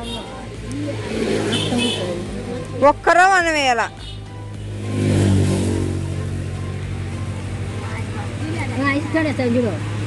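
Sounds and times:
women talking: 0.7s - 4.0s, 7.8s - 9.9s.

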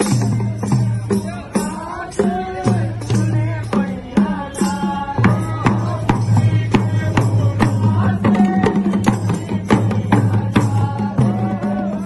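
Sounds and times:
dhol drum beating: 0.0s - 12.0s
men singing folk song: 0.0s - 12.0s.

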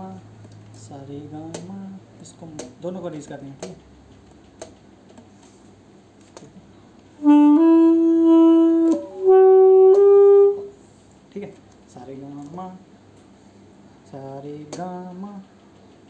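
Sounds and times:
saxophone notes: 7.2s - 10.8s.

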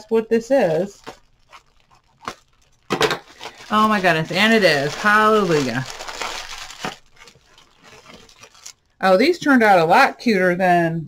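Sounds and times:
plastic bag crinkling: 0.4s - 9.0s
plastic bag tearing: 0.6s - 9.0s.

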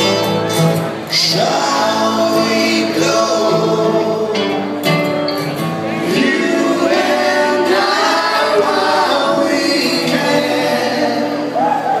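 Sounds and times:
acoustic guitars: 0.0s - 12.0s
voices singing together: 1.1s - 4.8s, 6.0s - 12.0s.

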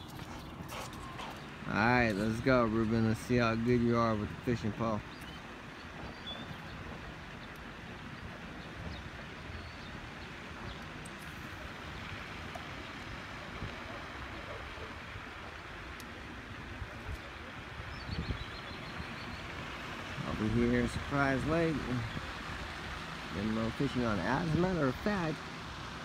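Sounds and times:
wind on microphone: 16.4s - 19.2s.

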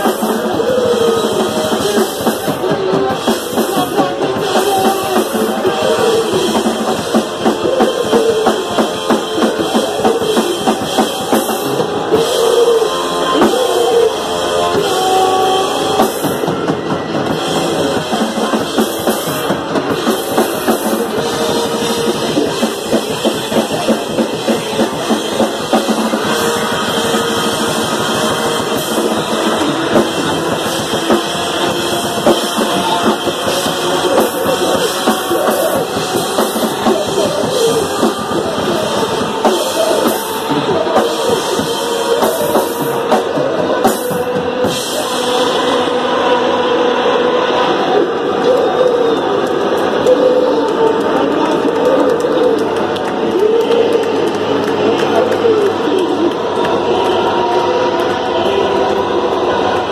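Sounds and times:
distorted electric guitar and bass: 0.0s - 59.9s
fast loud drum kit: 0.0s - 59.9s.

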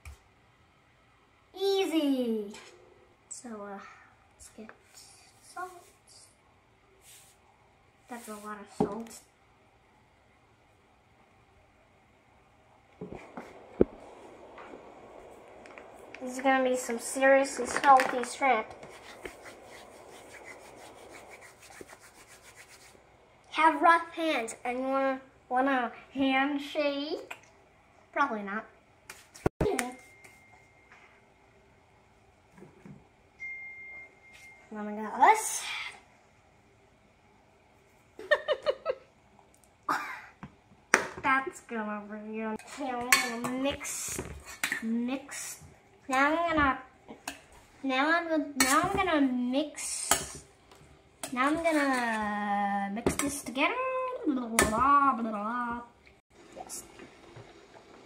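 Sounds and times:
child giggling: 38.2s - 39.1s.

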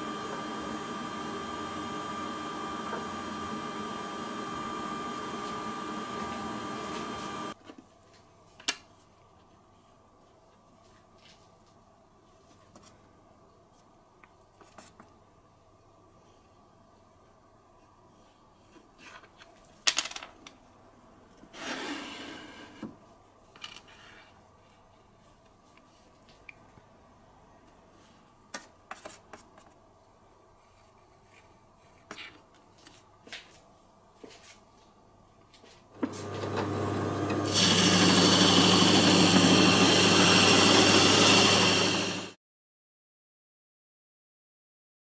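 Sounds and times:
spindle sander motor humming: 0.0s - 7.6s, 36.1s - 42.3s.

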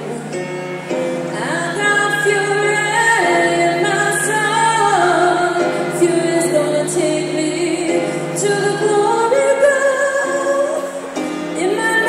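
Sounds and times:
woman singing long notes: 1.3s - 12.0s.

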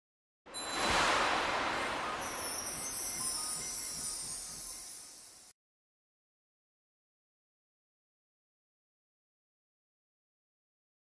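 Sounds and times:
shimmering chime sound effect: 0.5s - 5.6s.

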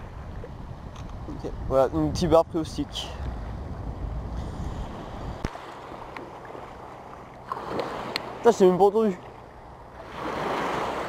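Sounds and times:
wind on microphone: 0.0s - 8.4s
rush of water: 4.4s - 11.0s
feet wading through water: 4.8s - 11.0s
surf washing on sand: 10.0s - 11.0s.

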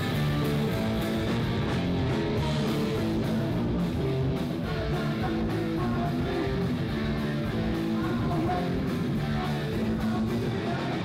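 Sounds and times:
live punk band playing: 0.0s - 11.0s.

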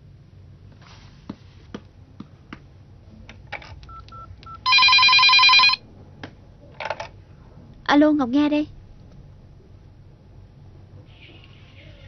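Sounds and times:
phone being picked up: 3.6s - 5.8s
keypad beeps: 3.9s - 5.8s
warbling electronic phone ring: 4.6s - 5.8s.

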